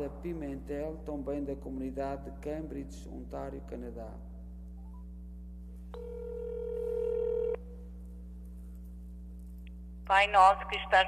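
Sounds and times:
low electrical hum: 0.0s - 11.0s
electronic telephone tone: 5.9s - 7.6s.

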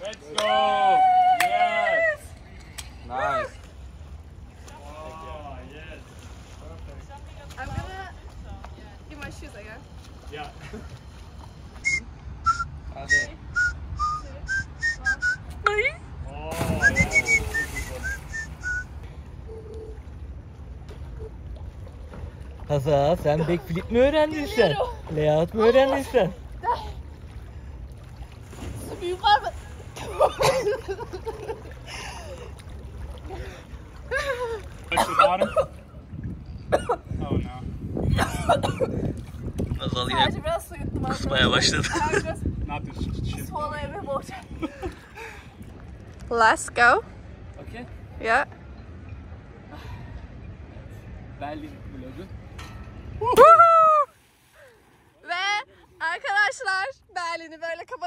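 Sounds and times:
whistled notes: 11.8s - 15.6s, 16.6s - 19.0s
woman laughing: 30.0s - 32.4s, 34.1s - 35.4s, 41.8s - 42.4s
low wind rumble on microphone: 35.7s - 46.1s.

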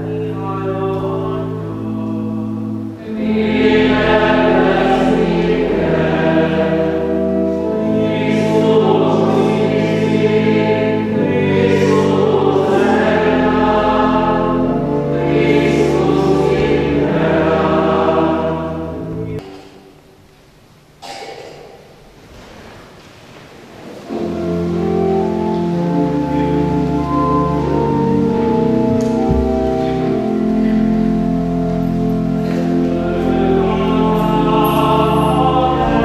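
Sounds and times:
voices singing a hymn: 0.0s - 19.4s, 24.0s - 36.0s
held low chords: 24.2s - 36.0s.

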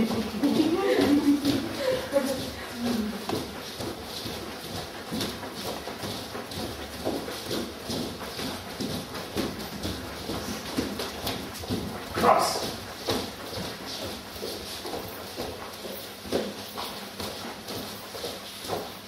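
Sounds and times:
footsteps on wooden floor: 0.0s - 19.0s.

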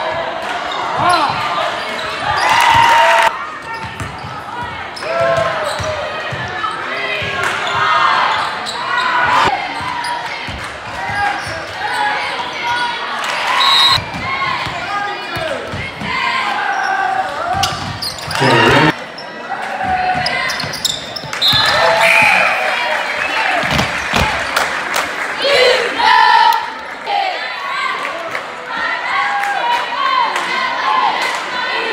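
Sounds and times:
basketball bouncing on court: 3.7s - 6.5s
crowd and player voices shouting: 18.3s - 20.5s, 25.4s - 31.9s.

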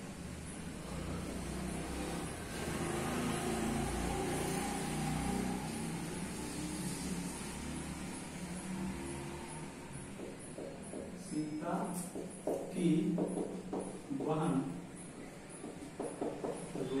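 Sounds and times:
vehicle passing: 0.5s - 10.8s.

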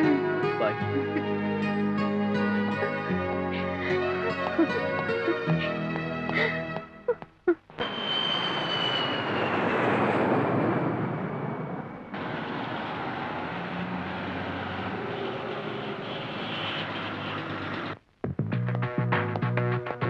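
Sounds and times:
city traffic noise: 0.0s - 18.0s
jet airliner passing overhead: 7.8s - 18.0s.

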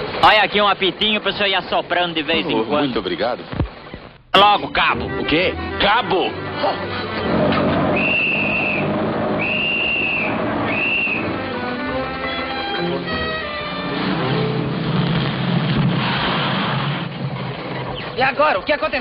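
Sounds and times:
film music: 4.4s - 15.8s
truck engine running: 4.8s - 18.2s
shrill hand whistle blasts: 7.9s - 11.3s.

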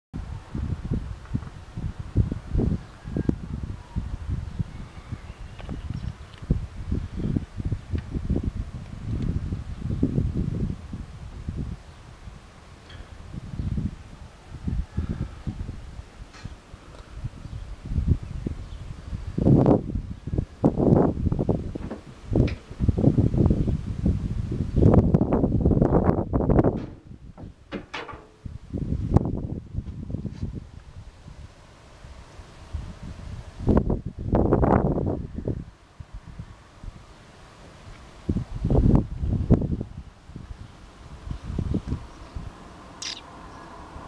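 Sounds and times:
wind buffeting microphone: 0.1s - 44.0s.

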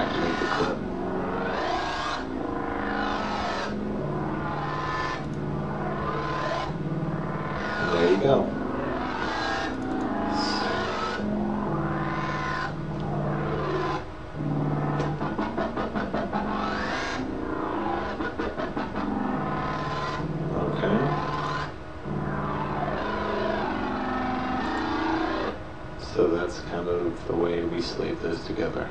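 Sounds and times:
wobble bass synth: 0.0s - 25.6s.

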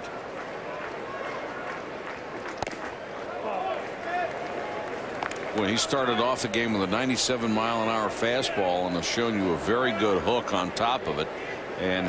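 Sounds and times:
ballpark crowd noise: 0.0s - 12.0s.

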